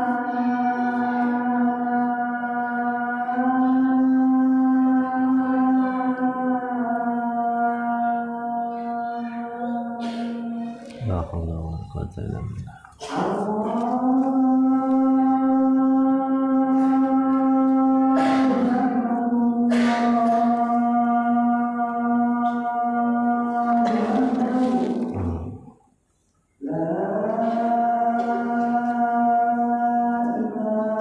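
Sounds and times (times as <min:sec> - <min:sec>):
man chanting call to prayer: 0:00.0 - 0:25.8, 0:26.6 - 0:31.0.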